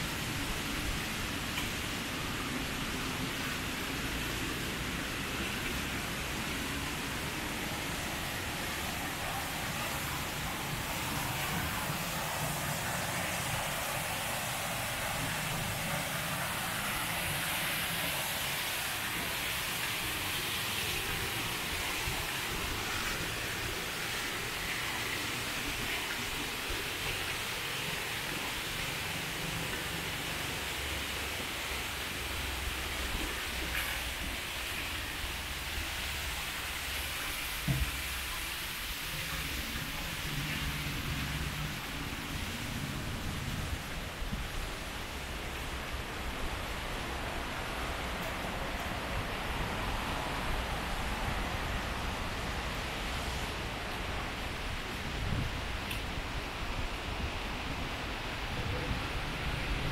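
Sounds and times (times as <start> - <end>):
fountain water splashing into pool: 0.0 - 59.9
brief knock: 37.6 - 38.0.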